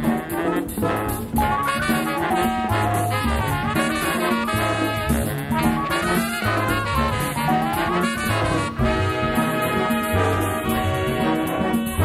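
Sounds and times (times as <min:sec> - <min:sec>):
big band playing jazz: 0:00.0 - 0:12.0.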